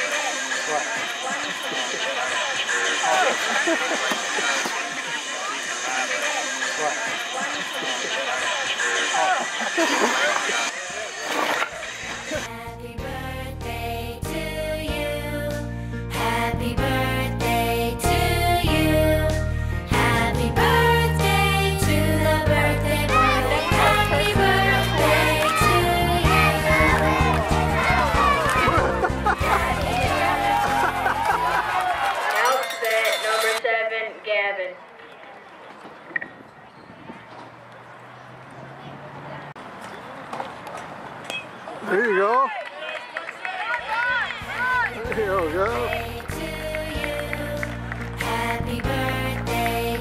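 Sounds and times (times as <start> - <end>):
outdoor voices: 0.0 - 50.0
music with held notes: 12.5 - 31.8
music: 12.5 - 32.2, 44.4 - 50.0
high-pitched voices shouting: 23.0 - 32.1.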